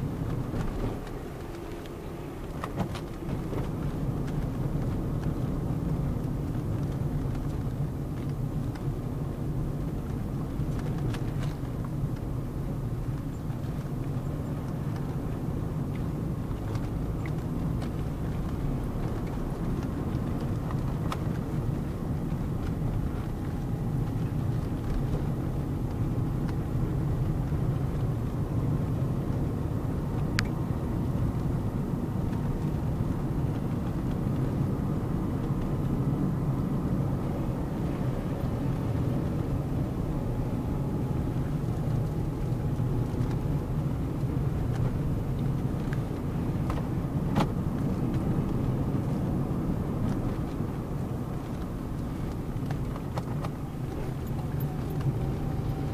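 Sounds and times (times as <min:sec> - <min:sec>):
car engine and tyres rumbling: 0:00.0 - 0:55.9.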